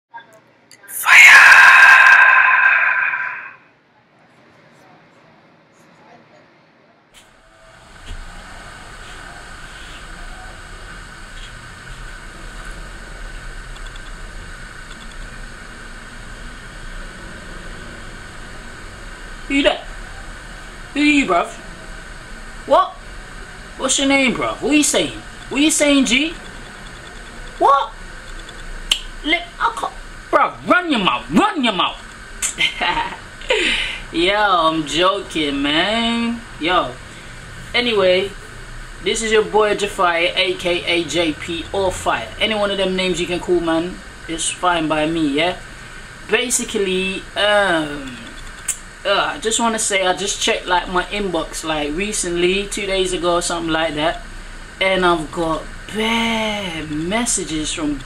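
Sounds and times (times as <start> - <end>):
high-pitched scream: 0.8 - 3.8
sharp click: 28.3 - 29.1.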